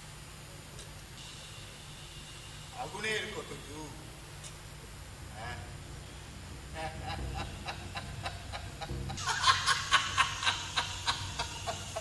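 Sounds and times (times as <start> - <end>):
man laughing: 6.7 - 12.0.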